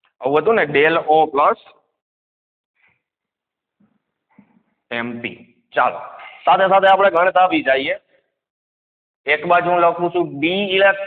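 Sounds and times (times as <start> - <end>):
man speaking: 0.2 - 1.8, 4.9 - 8.1, 9.3 - 11.0.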